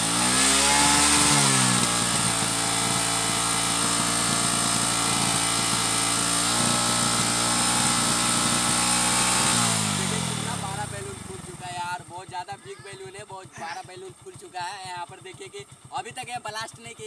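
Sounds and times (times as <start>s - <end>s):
motorcycle engine at high revs: 0.0s - 17.0s.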